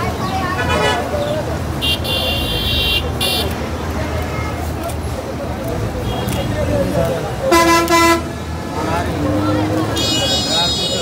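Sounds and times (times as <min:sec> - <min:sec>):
traffic rumble: 0:00.0 - 0:11.0
voices: 0:00.0 - 0:11.0.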